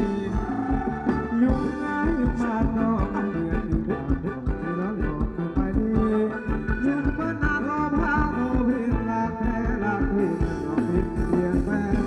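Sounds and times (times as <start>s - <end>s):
live band dance music: 0.0s - 12.0s
steady drum beat: 0.0s - 12.0s.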